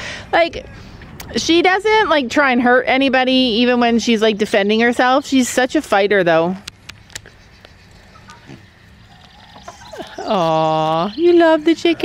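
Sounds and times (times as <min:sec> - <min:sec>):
hen clucking softly: 0:07.2 - 0:11.2.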